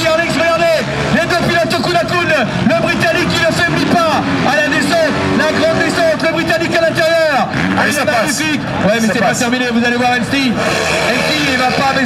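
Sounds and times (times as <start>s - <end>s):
man's voice: 0.0s - 12.0s
motocross bike engines revving: 0.0s - 12.0s.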